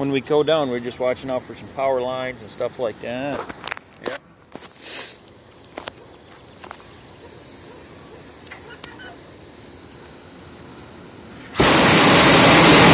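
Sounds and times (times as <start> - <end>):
faint distant sounds: 0.0 - 11.6
propane burner roaring: 4.4 - 12.9.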